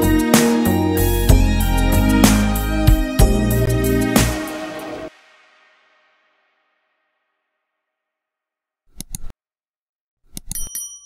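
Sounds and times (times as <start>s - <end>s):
mouse clicks: 8.9s - 9.3s
notification bell ding: 10.6s - 11.0s.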